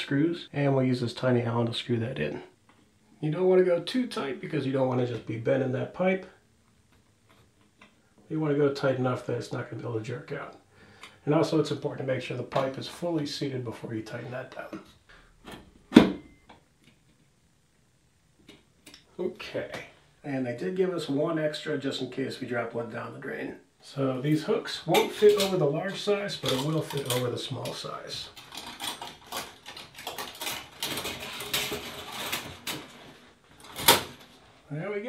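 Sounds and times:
curtain hooks scraping along metal rod: 26.4s - 34.2s.

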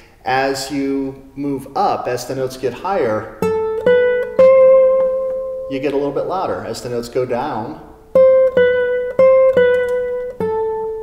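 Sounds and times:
classical guitar plucked notes: 3.3s - 6.2s, 7.6s - 11.0s.

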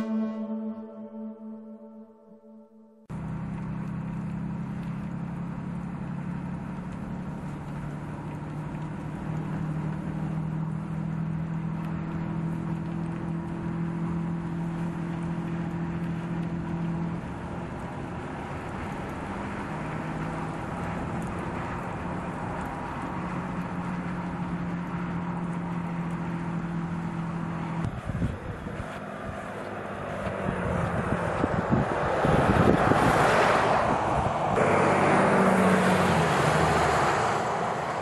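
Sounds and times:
truck engine droning: 0.0s - 38.0s
tyre and road noise: 3.1s - 38.0s.

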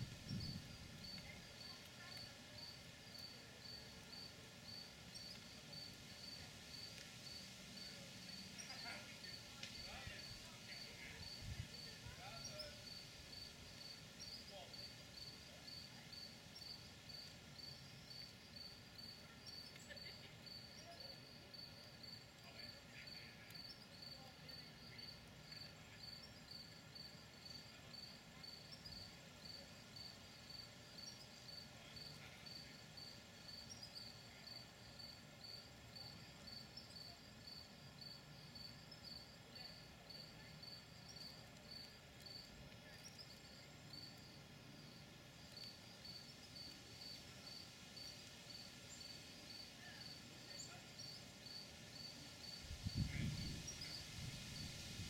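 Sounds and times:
cricket chirping: 0.0s - 55.0s.

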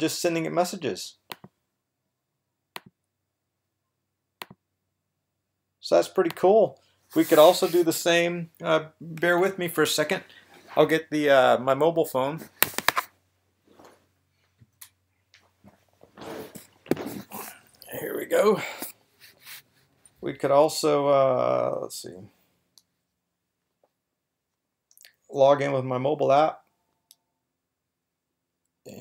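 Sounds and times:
rustling handling noise: 7.1s - 8.0s, 12.4s - 17.4s.

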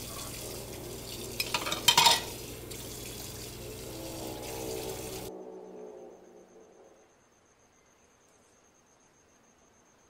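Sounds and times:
tap water running into sink: 0.0s - 5.3s
crockery clattering: 1.4s - 2.4s.

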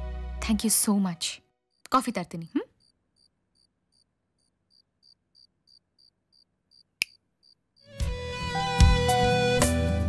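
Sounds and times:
cricket chirping: 1.6s - 8.0s.

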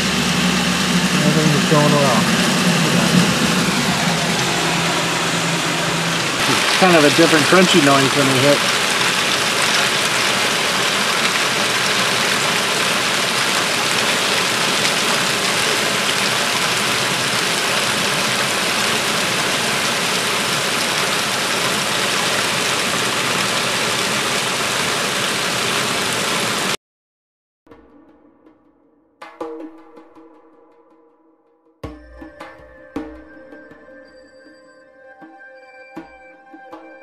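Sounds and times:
heavy rain and hail: 0.0s - 26.8s.

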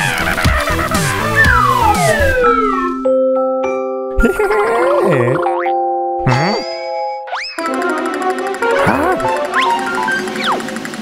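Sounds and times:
cartoon background music: 0.0s - 11.0s
springy boing sound effects: 4.5s - 7.4s.

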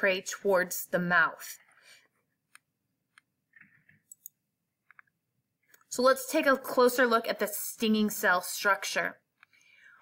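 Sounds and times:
computer mouse clicks: 2.5s - 5.9s.

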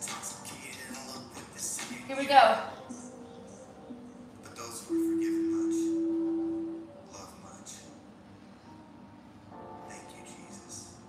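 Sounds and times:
long low electronic beep: 4.9s - 7.1s.

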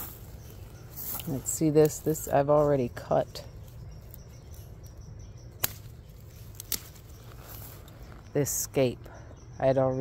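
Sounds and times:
low outdoor background: 0.0s - 10.0s.

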